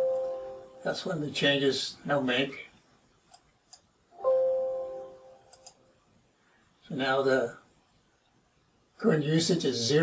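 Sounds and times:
computer mouse clicks: 3.3s - 3.9s, 5.5s - 5.8s.

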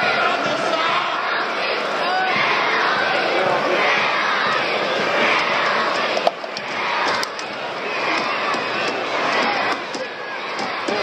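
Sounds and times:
stadium crowd shouting and singing: 0.0s - 11.0s.

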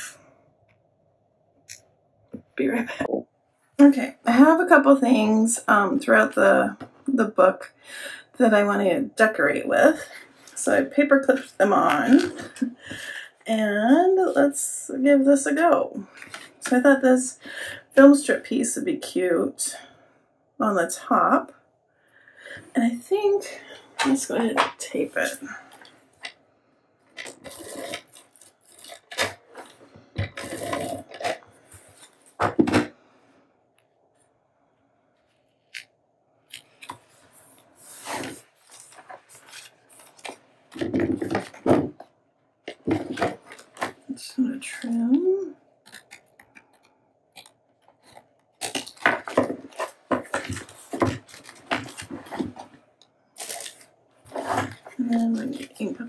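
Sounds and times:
paper rustling: 36.5s - 42.0s, 45.9s - 52.8s, 53.4s - 56.0s.

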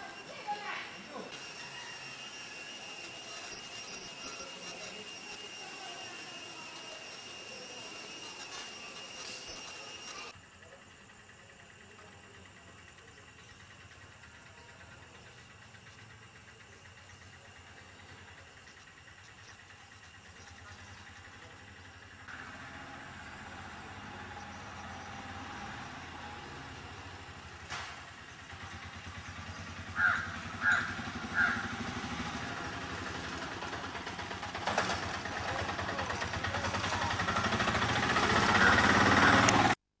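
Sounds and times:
outdoor ambience: 0.0s - 40.0s
harsh bird calls: 29.1s - 32.0s.

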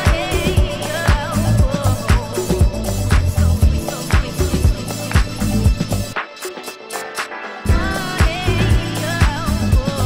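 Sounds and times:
bass line: 0.0s - 6.2s, 7.7s - 10.0s
kick drum: 0.1s - 5.9s, 7.7s - 10.0s.

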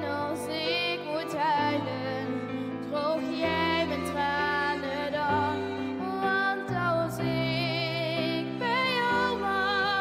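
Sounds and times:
violin cello and piano ballad: 0.0s - 10.0s.

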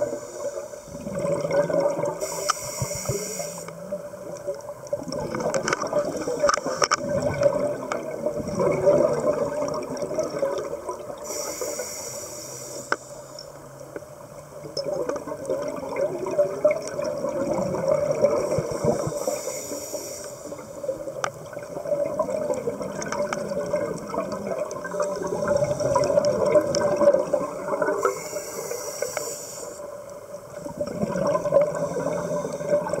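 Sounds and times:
bubbles gurgling underwater: 0.0s - 3.0s, 3.8s - 11.3s, 14.6s - 19.4s, 20.5s - 28.2s, 30.4s - 33.0s
brief hisses: 2.2s - 3.7s.

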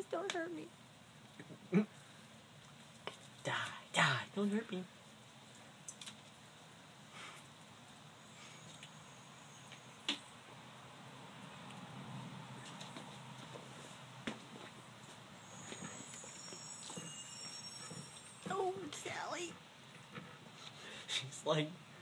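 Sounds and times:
faint high-pitched tones: 15.3s - 19.6s.

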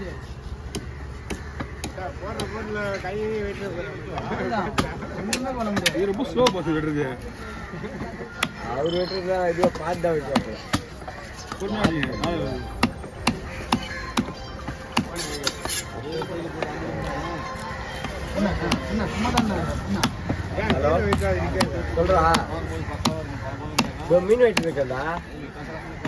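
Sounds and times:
cleaver chopping onto wooden block: 18.6s - 24.8s.

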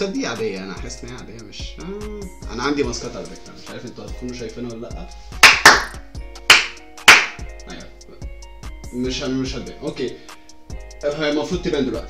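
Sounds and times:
quiet rap music: 0.0s - 12.0s
loud hand smacks: 5.4s - 7.4s.

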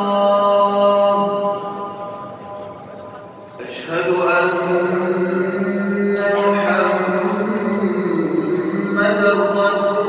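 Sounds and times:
call to prayer: 0.0s - 10.0s.

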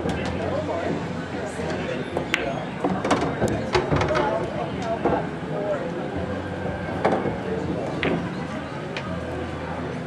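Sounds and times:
murmur of voices: 0.0s - 10.0s
pool balls clicking: 6.7s - 8.3s
cue striking ball: 7.0s - 8.4s.

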